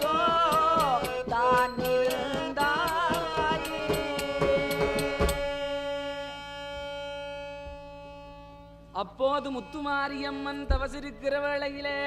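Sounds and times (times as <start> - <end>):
drum strokes: 0.0 - 5.6
harmonium sustained chord: 0.0 - 10.7.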